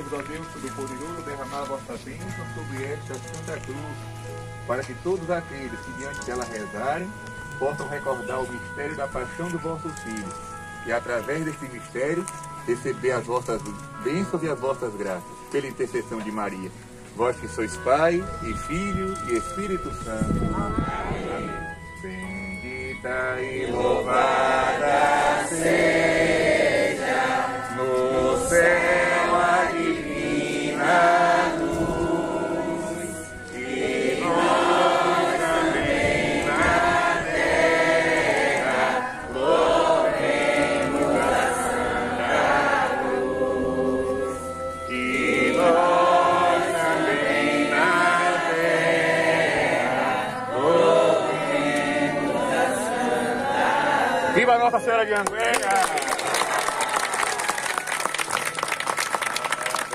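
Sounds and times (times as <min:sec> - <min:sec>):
group singing a hymn: 0:19.4 - 0:54.6.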